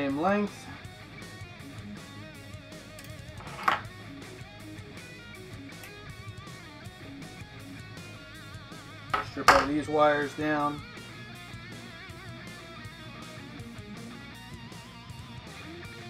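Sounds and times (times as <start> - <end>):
background guitar music: 0.0 - 16.0.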